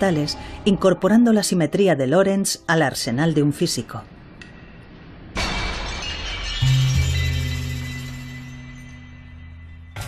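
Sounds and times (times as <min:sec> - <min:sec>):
glass shattering: 0:05.4 - 0:09.5
deep sustained music note: 0:06.6 - 0:10.0.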